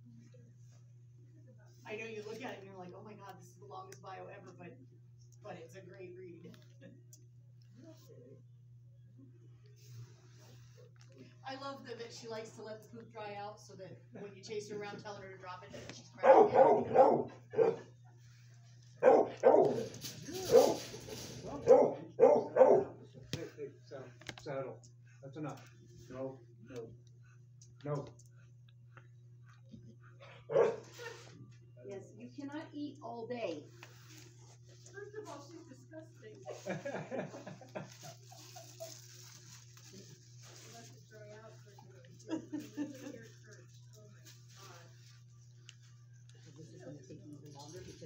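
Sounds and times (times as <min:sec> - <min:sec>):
steady low hum: 0:00.0 - 0:48.0
dog barking: 0:16.2 - 0:18.0, 0:19.0 - 0:23.2, 0:30.4 - 0:31.1.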